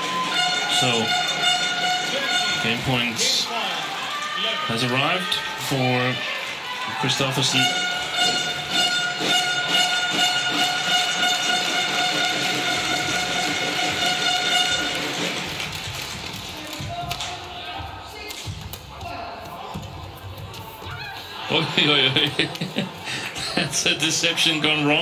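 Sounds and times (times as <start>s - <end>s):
steady horn-like tone: 0.1s - 3.4s, 7.5s - 15.5s.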